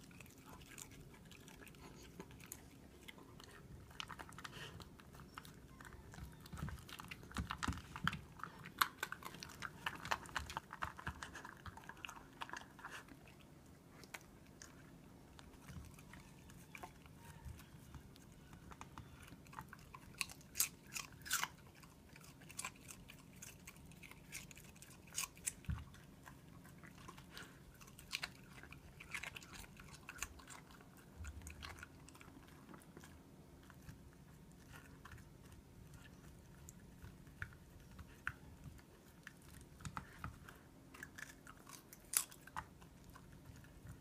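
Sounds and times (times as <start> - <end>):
dog crunching vegetables: 0.0 - 44.0.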